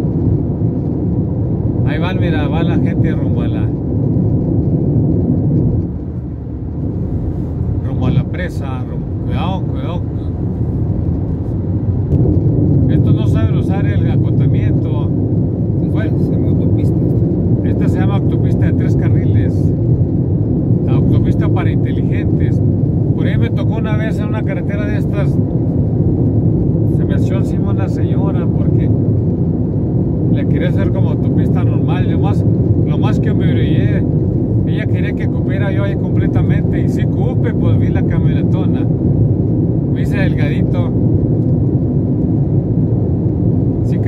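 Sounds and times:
vehicle road and engine noise: 0.0 - 44.0.

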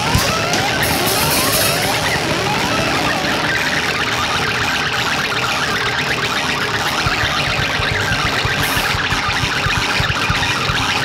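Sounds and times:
fast low pulsing: 0.0 - 11.0.

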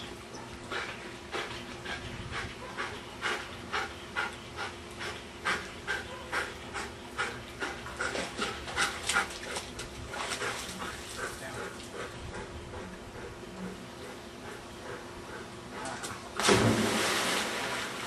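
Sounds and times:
dog panting hard: 0.6 - 16.2.

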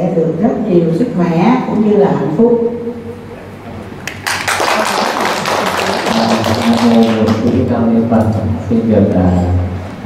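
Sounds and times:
people applauding: 4.0 - 7.8.

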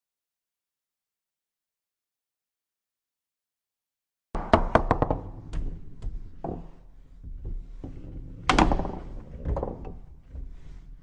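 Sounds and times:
foosball knocks and clacks: 4.4 - 10.6.

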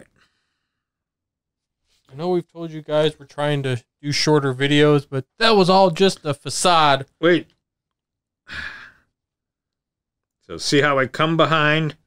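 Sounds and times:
man sighing: 8.5 - 9.1.

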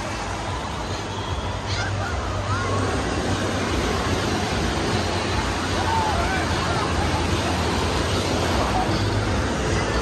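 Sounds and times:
distant voices of swimmers: 0.0 - 10.0
surf breaking and churning: 0.0 - 10.0.

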